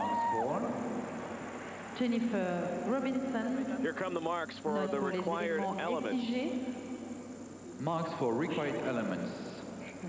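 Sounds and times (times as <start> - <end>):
background noise: 0.0 - 10.0.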